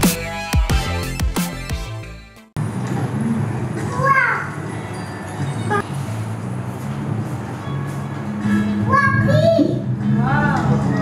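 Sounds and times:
electronic background music: 0.0 - 2.5
busy indoor hall hum: 2.6 - 11.0.

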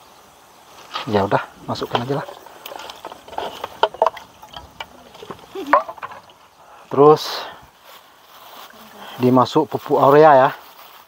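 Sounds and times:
leaves and stems rustling: 0.0 - 11.0.

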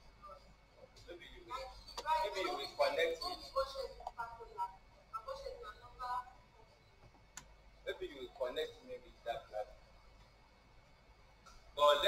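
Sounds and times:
man speaking: 7.9 - 9.7, 11.8 - 12.0.

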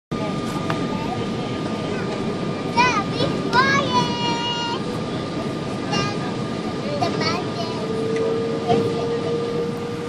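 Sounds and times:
aircraft cabin engine noise: 0.1 - 10.0
faint voices: 0.1 - 10.0.

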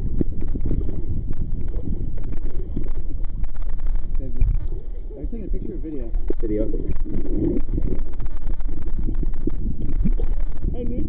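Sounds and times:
low rumble on microphone: 0.0 - 11.0
water sloshing and lapping: 0.0 - 11.0.

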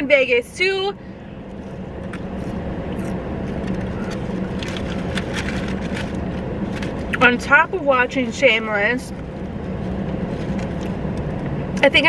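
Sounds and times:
vehicle rumble inside car: 0.0 - 12.0
paper wrapper crinkling: 3.0 - 7.3.

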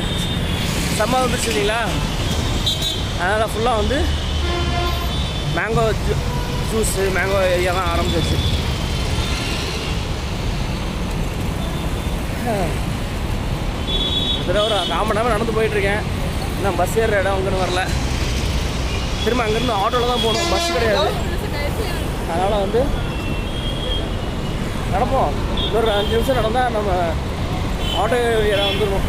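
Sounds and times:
rumble of passing cars and motorbikes: 0.0 - 29.0.

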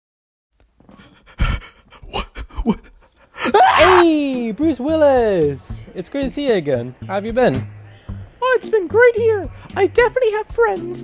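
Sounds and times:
heavy panting breaths: 0.9 - 3.6.

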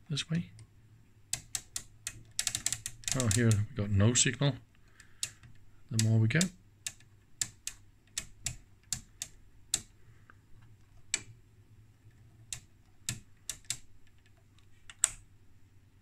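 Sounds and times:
rotary switch detent clicks: 1.3 - 3.7, 4.9 - 10.0, 10.8 - 11.4, 12.1 - 15.3.

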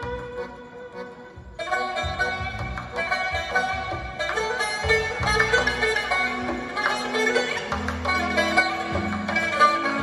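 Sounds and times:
keyboard: 0.0 - 10.0
long-necked string instrument lead: 0.0 - 10.0.

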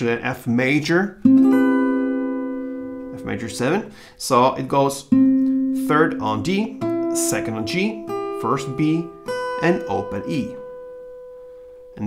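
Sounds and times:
acoustic guitar chord strummed: 1.2 - 12.0.

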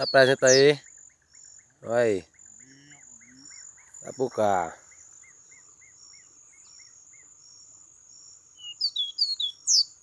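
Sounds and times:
high insect trill: 0.0 - 10.0
bird whistling notes: 8.6 - 10.0.

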